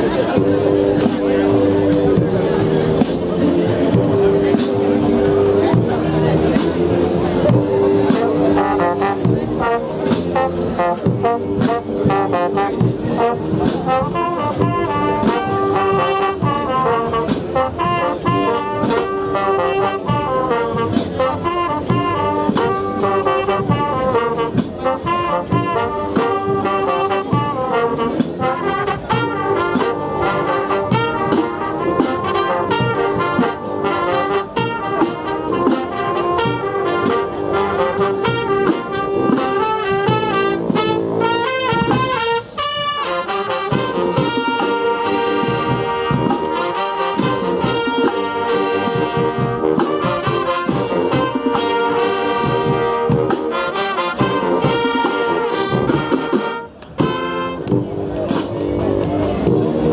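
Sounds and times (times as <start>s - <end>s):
marching brass band playing: 0.0s - 59.9s.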